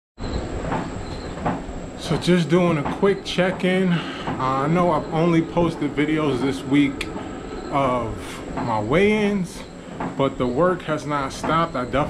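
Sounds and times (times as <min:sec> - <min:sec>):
treadmill motor and belt hum: 0:00.2 - 0:12.0
footfalls on treadmill belt: 0:00.6 - 0:04.9.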